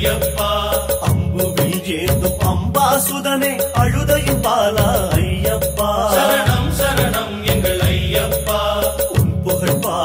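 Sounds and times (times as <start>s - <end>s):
instrumental accompaniment with beat: 0.0s - 10.0s
man singing devotional song: 0.0s - 10.0s.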